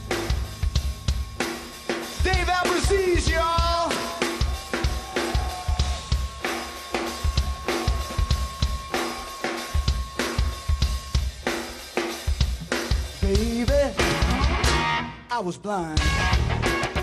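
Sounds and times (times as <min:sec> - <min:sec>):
drum kit beat: 0:00.0 - 0:17.0
rock band playing: 0:00.0 - 0:17.0.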